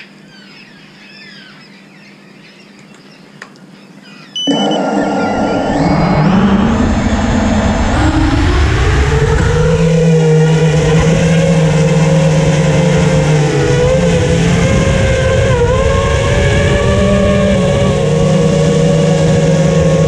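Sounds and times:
drone motors whining: 0:04.1 - 0:20.0.

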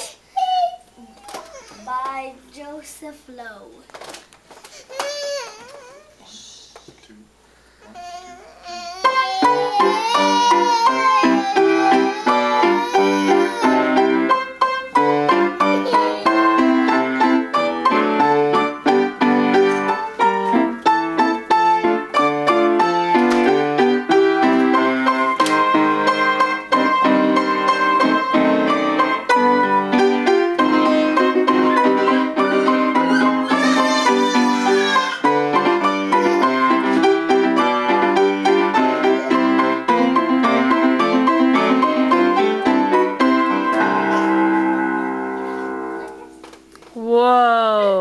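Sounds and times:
piano duet: 0:08.0 - 0:46.5.

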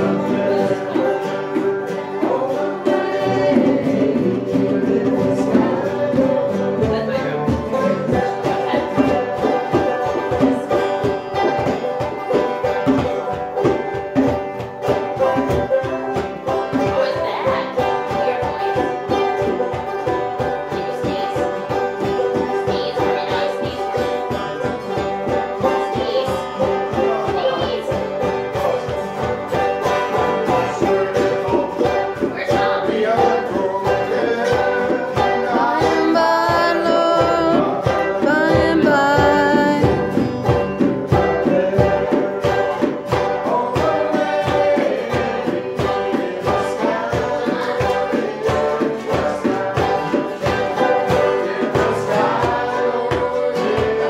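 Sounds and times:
acoustic guitar strumming: 0:00.0 - 0:54.0
banjo picking: 0:00.0 - 0:54.0
mandolin picking: 0:00.0 - 0:54.0
voices singing: 0:00.0 - 0:54.0.

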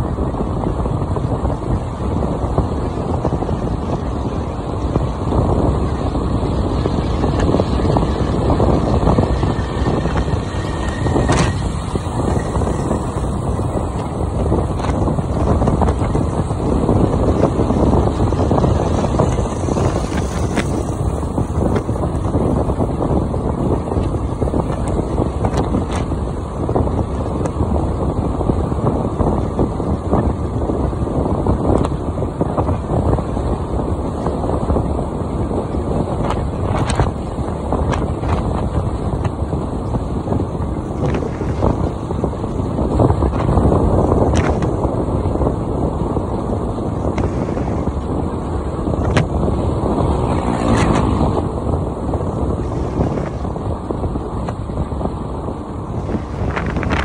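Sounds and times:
scooter engine and road noise: 0:00.0 - 0:57.0
wind buffeting microphone: 0:00.0 - 0:57.0.

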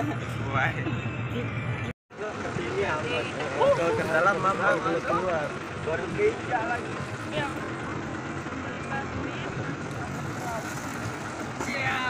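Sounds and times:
tractor engine running: 0:00.0 - 0:12.0
voices: 0:00.0 - 0:12.0.

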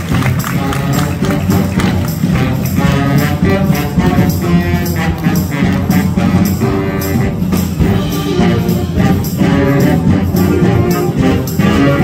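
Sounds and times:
concert band playing: 0:00.0 - 0:12.0
percussion beat: 0:00.0 - 0:12.0.

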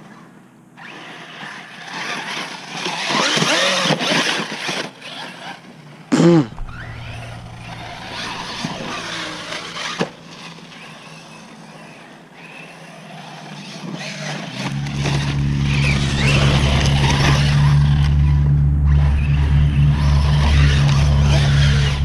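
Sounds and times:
rc truck motor whining: 0:00.0 - 0:22.0
loud steady low rumble: 0:06.2 - 0:10.4, 0:14.7 - 0:22.0.

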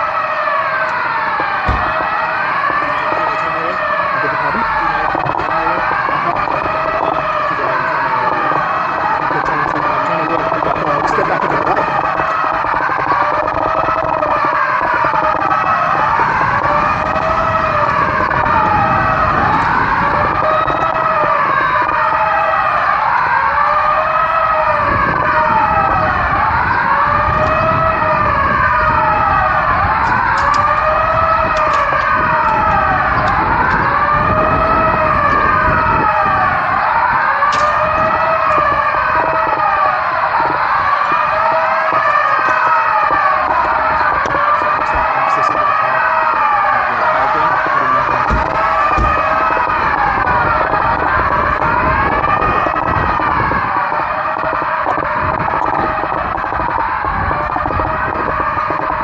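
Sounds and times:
emergency sirens wailing: 0:00.0 - 0:59.0
low rumble of vehicles: 0:00.0 - 0:59.0.

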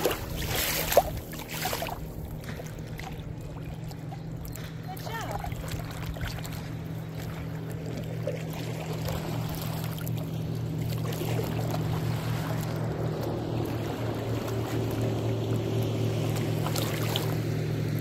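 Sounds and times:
boat engine humming: 0:00.0 - 0:18.0
water and wind noise: 0:00.0 - 0:18.0.

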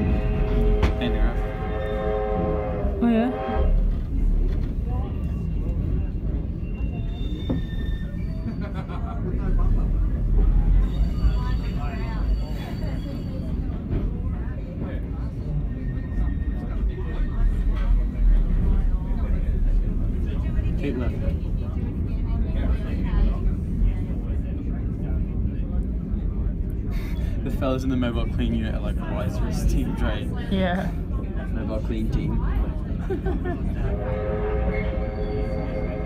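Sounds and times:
train carriage rumbling on track: 0:00.0 - 0:36.0
faint high-pitched squeals: 0:05.0 - 0:08.8, 0:10.7 - 0:13.8, 0:15.6 - 0:18.2, 0:34.5 - 0:36.0.

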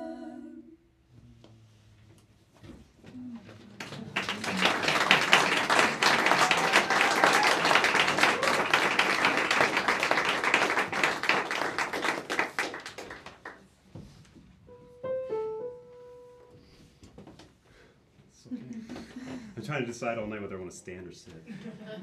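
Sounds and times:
audience applauding: 0:03.7 - 0:13.7.

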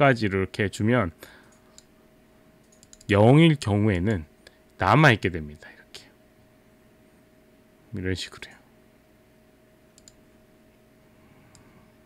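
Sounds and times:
faint computer mouse clicks: 0:10.0 - 0:10.2.

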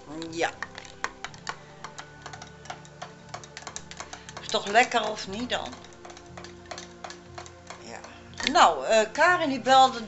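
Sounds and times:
teaspoon clinking against glass: 0:00.2 - 0:08.6.

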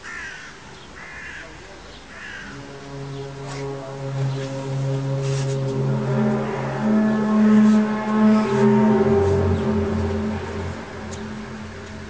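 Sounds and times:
crow cawing: 0:00.0 - 0:01.5, 0:02.1 - 0:02.6
low drone with overtones: 0:02.2 - 0:12.0.

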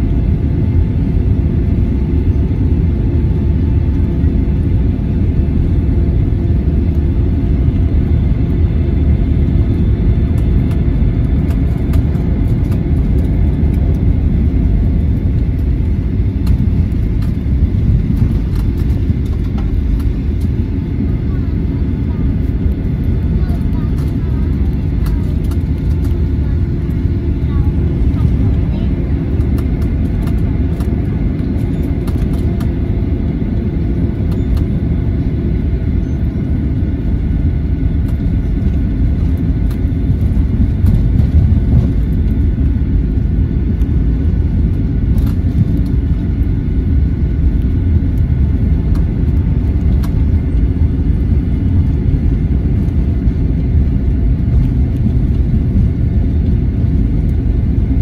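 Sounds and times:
jet engines at low taxi power: 0:00.0 - 0:58.0.

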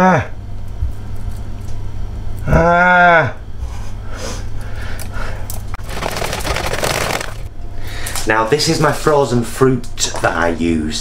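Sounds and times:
whisk beating batter in plastic bowl: 0:05.8 - 0:07.4
plastic packaging rustling: 0:05.8 - 0:07.5.

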